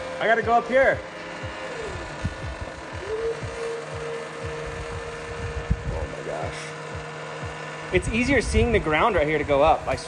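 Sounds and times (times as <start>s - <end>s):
lift motor and hydraulics whining: 0.0s - 10.0s.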